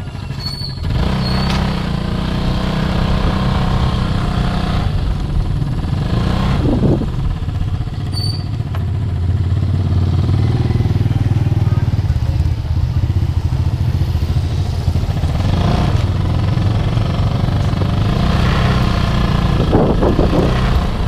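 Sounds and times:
motorcycle with sidecar passing: 0.0 - 21.0
small motorcycle engine running: 0.0 - 21.0.

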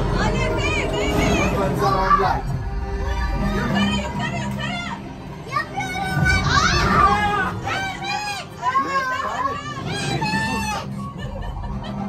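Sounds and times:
low rumble: 0.0 - 8.1
children shouting and squealing: 5.4 - 11.5.

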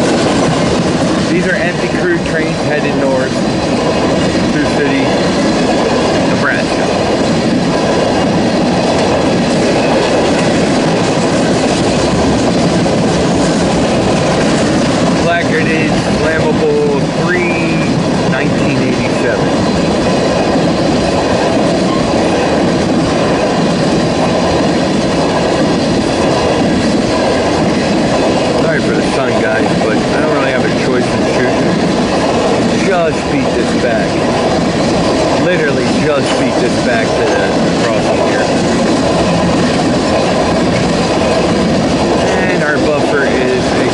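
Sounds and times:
steel wheels rolling on rail: 0.0 - 43.9.

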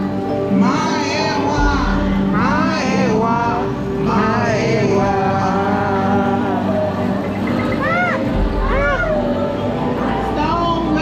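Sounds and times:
ambient music with sustained tones: 0.0 - 11.0
swooping calls: 6.9 - 10.0.

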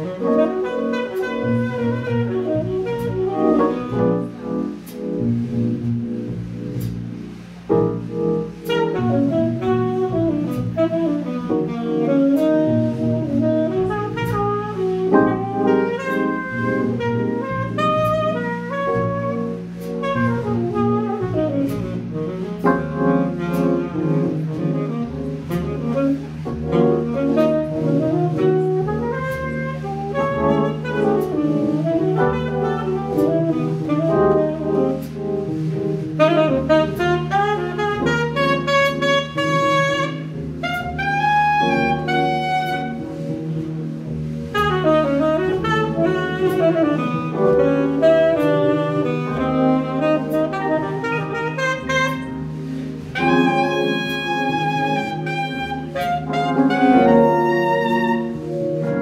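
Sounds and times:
drums on cymbals: 0.0 - 57.8
piano comping: 0.0 - 59.0
saxophone jazz solo: 0.0 - 59.0
walking double bass: 0.0 - 59.0.

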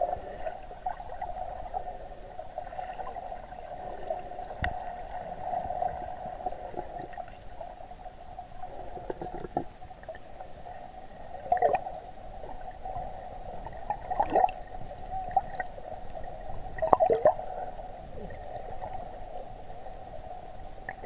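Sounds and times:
underwater water wash: 0.0 - 21.0.

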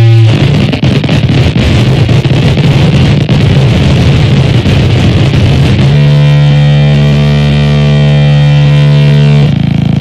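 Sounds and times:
harsh buzzing drone: 0.0 - 10.0.

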